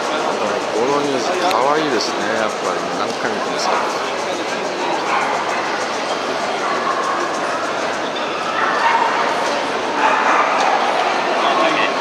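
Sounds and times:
people talking: 0:00.0 - 0:12.0
dog barking: 0:04.9 - 0:05.9, 0:08.3 - 0:11.0.

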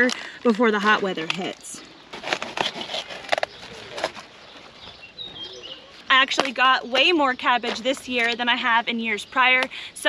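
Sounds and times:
cabbage leaves rustling and snapping: 0:01.2 - 0:04.8.

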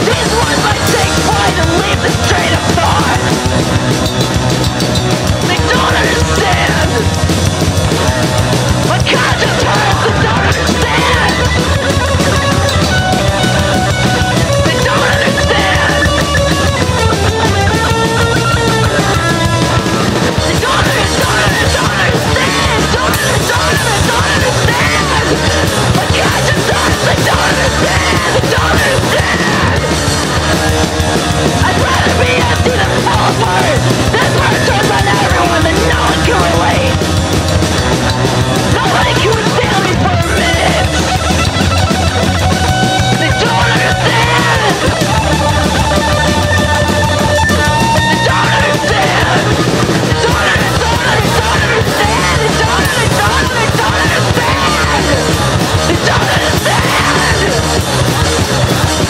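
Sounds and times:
person singing: 0:00.0 - 0:07.2, 0:07.8 - 0:37.2, 0:37.8 - 0:58.8
punk band playing: 0:00.0 - 0:59.0
yelled lead vocal: 0:00.0 - 0:59.0.

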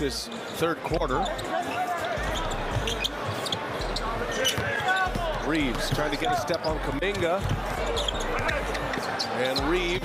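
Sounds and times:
background arena voices: 0:00.0 - 0:10.0.

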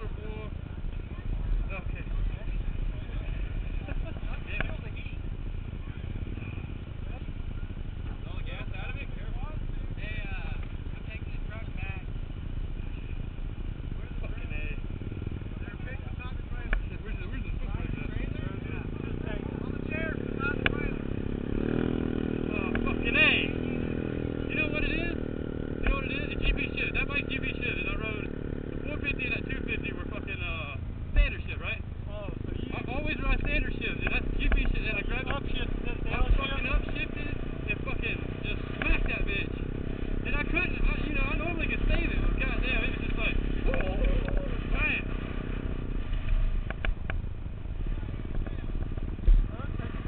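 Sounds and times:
indistinct voices talking: 0:00.0 - 0:50.0
motorcycle engine revving: 0:00.0 - 0:50.0.

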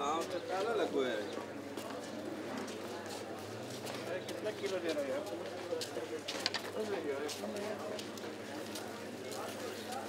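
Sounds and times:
passers-by talking: 0:00.0 - 0:10.0
footsteps clicking and tapping: 0:01.8 - 0:10.0.

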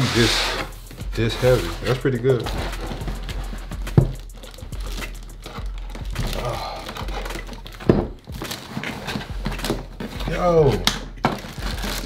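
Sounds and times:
cardboard flaps rustling and scraping: 0:00.0 - 0:12.0.

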